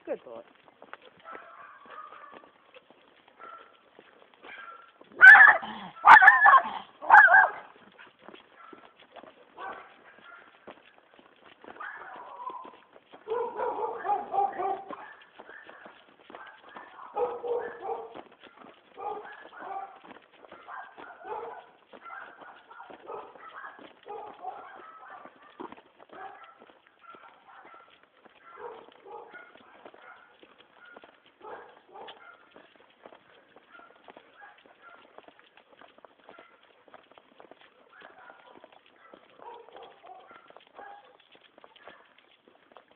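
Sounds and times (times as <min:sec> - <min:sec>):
faint footsteps on paving: 0:00.0 - 0:42.9
dog barking: 0:01.1 - 0:02.6, 0:03.3 - 0:03.8, 0:04.4 - 0:08.9, 0:09.5 - 0:10.7, 0:11.7 - 0:32.8, 0:33.6 - 0:35.3, 0:36.2 - 0:36.8, 0:37.7 - 0:42.2.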